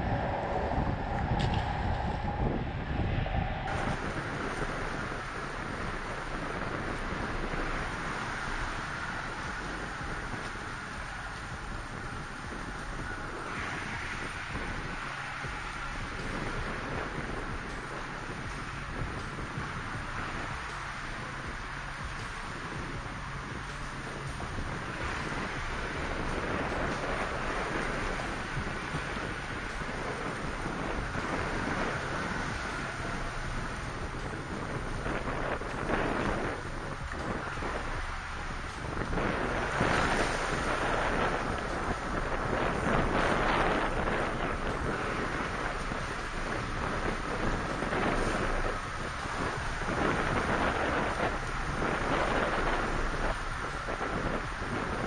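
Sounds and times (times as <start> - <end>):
wind buffeting microphone: 0.0 - 55.0.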